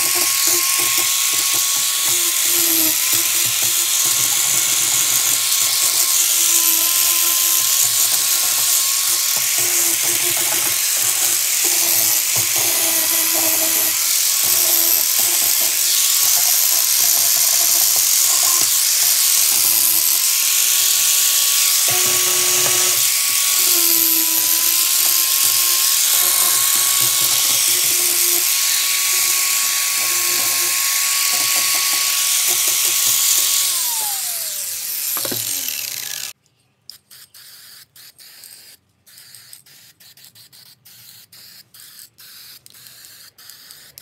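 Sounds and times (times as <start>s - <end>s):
angle grinder grinding steel: 0.0s - 36.4s.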